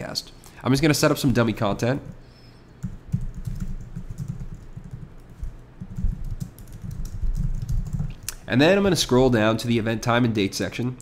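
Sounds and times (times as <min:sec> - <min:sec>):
computer keyboard typing: 0:02.8 - 0:08.4.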